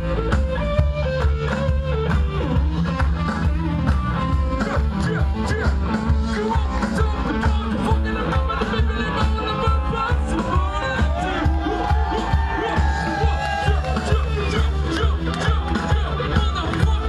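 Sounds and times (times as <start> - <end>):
bass and drums: 0.0 - 17.0
electric guitar: 0.0 - 17.0.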